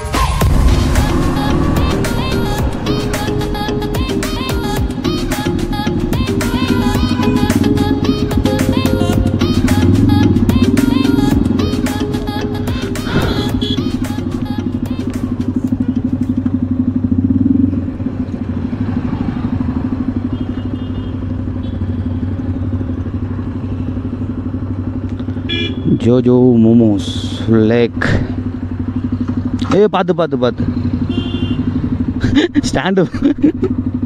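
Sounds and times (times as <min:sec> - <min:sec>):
background music with a beat: 0:00.0 - 0:16.4
motorcycle engine running: 0:00.2 - 0:34.0.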